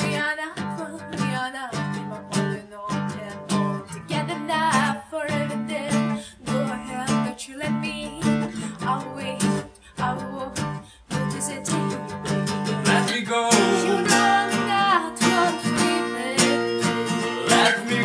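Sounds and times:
acoustic guitar strumming: 0.0 - 18.0
woman singing: 0.0 - 18.0.

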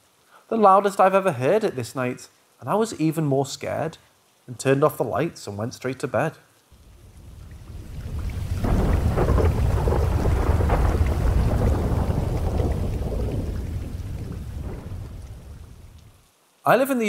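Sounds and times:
rain: 0.0 - 17.0
rolling thunder: 6.8 - 16.2.

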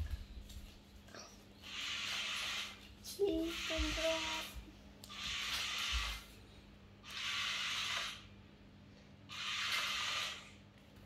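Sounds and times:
small electric motors whirring: 1.6 - 6.3, 7.0 - 8.3, 9.3 - 10.6.

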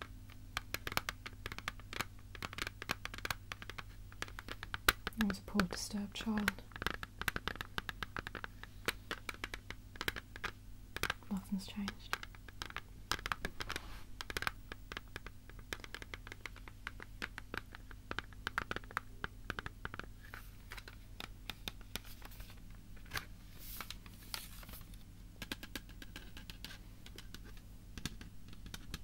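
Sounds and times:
fingernails tapping on hard object: 0.0 - 20.1, 25.4 - 29.0.

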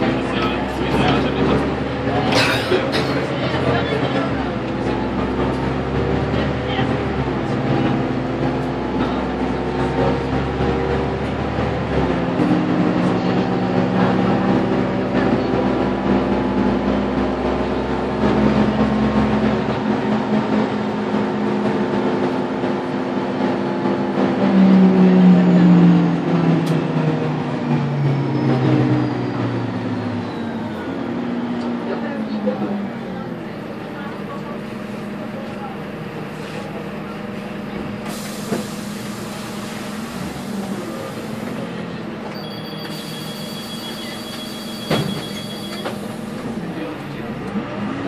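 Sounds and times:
bus engine and drivetrain: 0.0 - 48.0.

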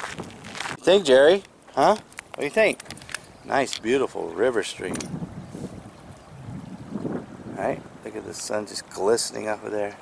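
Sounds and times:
wind buffeting microphone: 0.0 - 1.3, 2.6 - 10.0.

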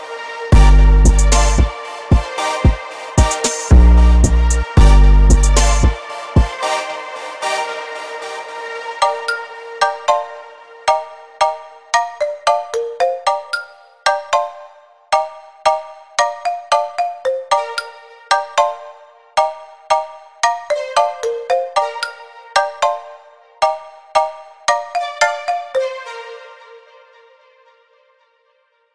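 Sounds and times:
reggaeton beat: 0.5 - 8.0
held low synth note: 3.7 - 5.8
short synth notes: 3.7 - 6.0.

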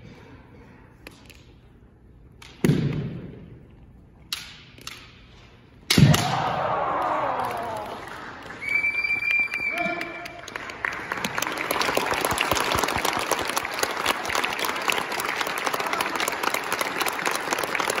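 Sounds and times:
audience applauding: 6.9 - 18.0.

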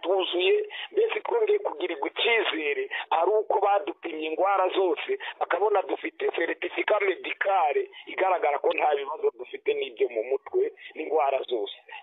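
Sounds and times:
person talking over telephone: 0.0 - 12.0.

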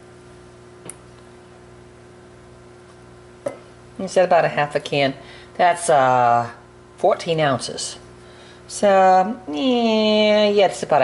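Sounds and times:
low room hum: 0.0 - 11.0.

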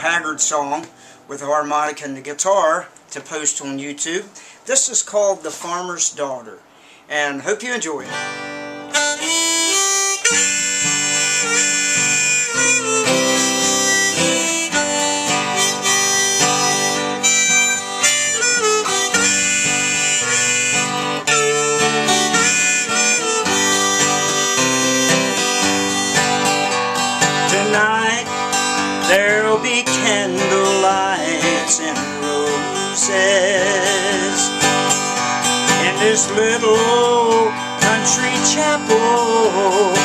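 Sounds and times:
strummed guitar: 7.8 - 40.0
harmonica melody: 8.1 - 40.0.

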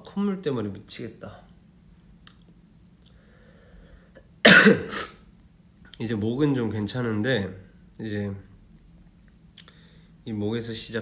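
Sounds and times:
faint breath: 3.1 - 4.2, 9.7 - 10.2
man coughing: 4.4 - 5.2.

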